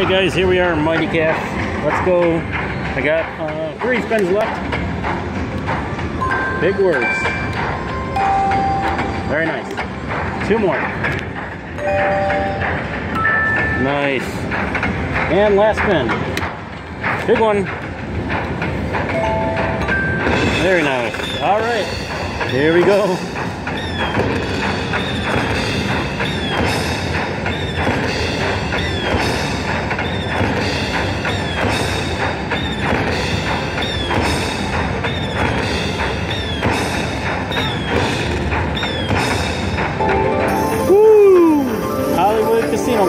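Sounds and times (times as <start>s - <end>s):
slot machine game sounds: 6.2s - 9.6s, 11.8s - 14.4s, 19.1s - 23.4s, 39.9s - 43.0s
steady percussive beat: 17.0s - 43.0s
two-note electronic tone: 40.0s - 43.0s.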